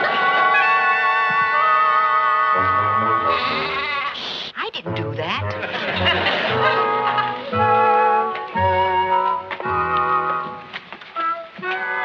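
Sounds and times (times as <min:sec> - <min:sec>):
sheep bleating: 0:00.6 - 0:04.2
music cue: 0:04.8 - 0:12.0.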